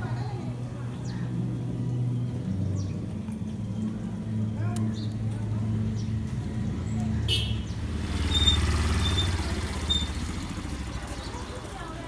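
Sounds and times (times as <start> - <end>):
motorcycle engine passing: 5.5 - 12.0.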